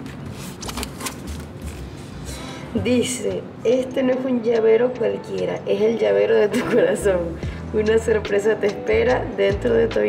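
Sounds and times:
paper rustling: 0.0s - 2.1s.

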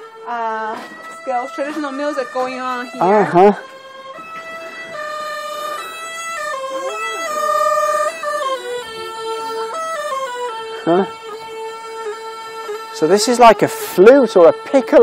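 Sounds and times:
flute playing slow melody: 0.0s - 15.0s.

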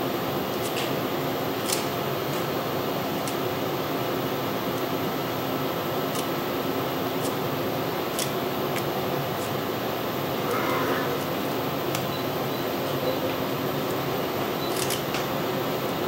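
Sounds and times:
ventilation fan hum: 0.0s - 16.0s.

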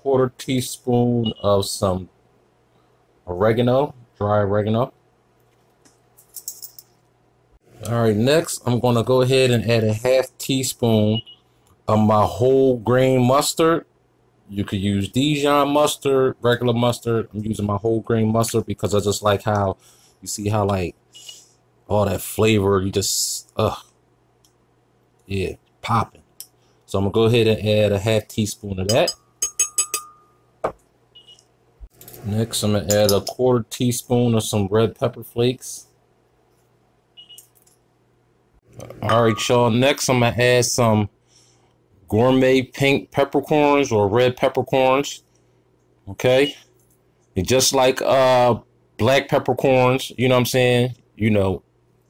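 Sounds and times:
spoon clinking against glass jar: 28.9s - 30.4s.

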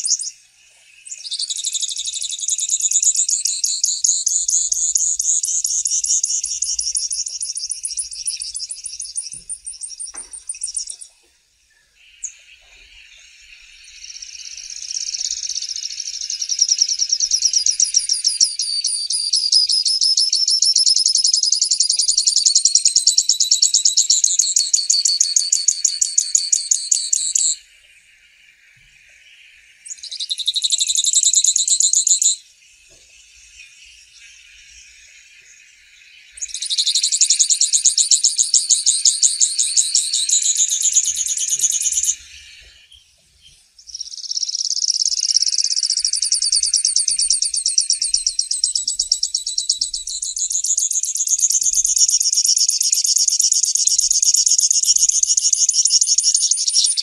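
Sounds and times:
bird singing rapid trills: 0.0s - 57.0s
faint steady hiss: 0.0s - 57.0s.

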